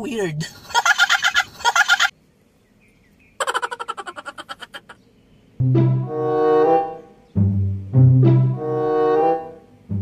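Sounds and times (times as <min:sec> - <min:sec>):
man cackling laughter: 0:00.6 - 0:02.1, 0:03.4 - 0:05.0.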